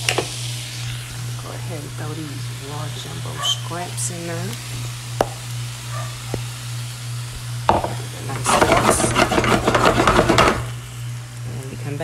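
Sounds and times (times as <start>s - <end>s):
food sizzling in a skillet: 0.0s - 12.0s
low steady hum: 0.0s - 12.0s
knock on skillet: 5.2s - 5.4s, 7.7s - 10.7s.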